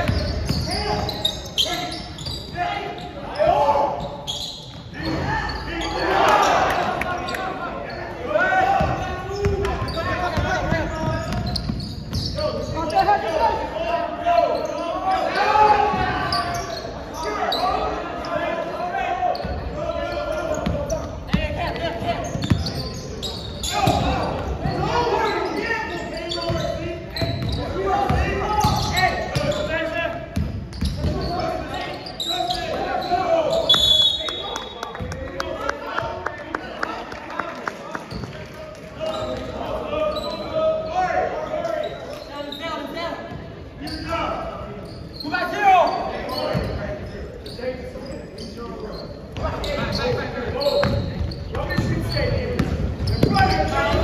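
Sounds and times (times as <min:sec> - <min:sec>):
voices and shouts echoing: 0:00.0 - 0:54.0.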